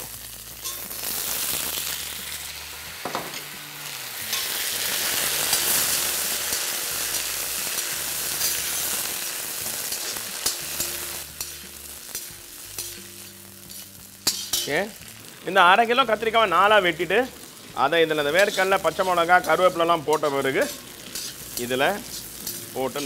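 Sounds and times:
eggplant sizzling in hot oil: 0.0s - 23.0s
ladle scraping and clicking on pan: 9.9s - 14.8s, 18.4s - 23.0s.

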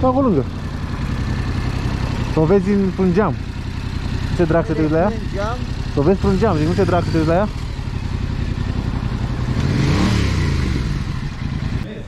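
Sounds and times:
motorcycle engine running: 0.0s - 11.9s.

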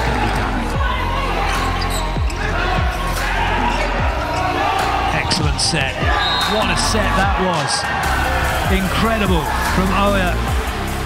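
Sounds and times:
arena music: 0.0s - 11.0s
crowd noise: 0.0s - 11.0s.

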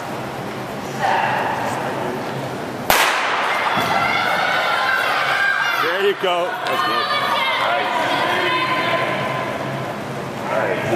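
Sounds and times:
crowd chatter: 0.8s - 10.9s.

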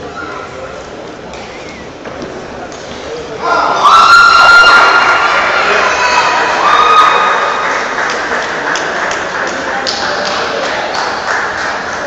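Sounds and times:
spectators cheering and shouting: 3.4s - 7.9s.

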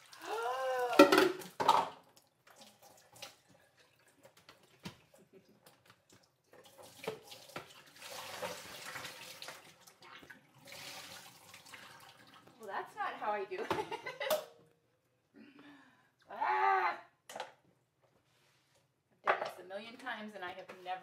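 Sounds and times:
water splashing into a sink: 0.0s - 12.7s.

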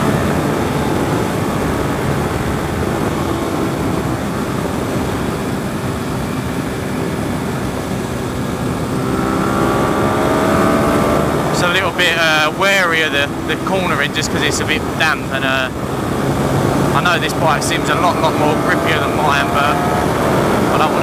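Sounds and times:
motorcycle engine running: 0.0s - 21.0s
wind rush on microphone: 0.0s - 21.0s.

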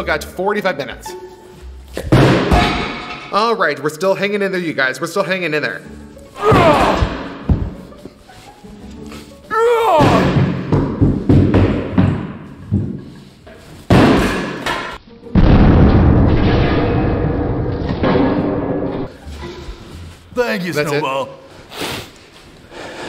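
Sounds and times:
background music: 0.0s - 17.2s, 18.1s - 23.0s.

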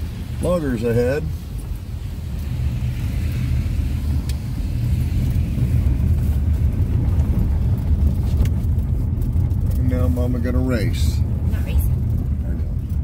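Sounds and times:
car cabin road and engine rumble: 0.0s - 13.0s.

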